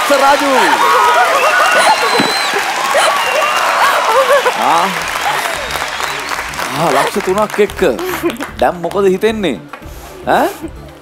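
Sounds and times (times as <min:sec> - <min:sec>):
audience applauding: 0:00.0 - 0:09.9.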